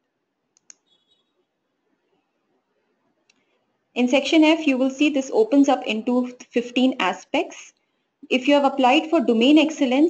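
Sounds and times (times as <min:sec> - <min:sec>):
computer mouse clicking: 0:00.6 - 0:00.9.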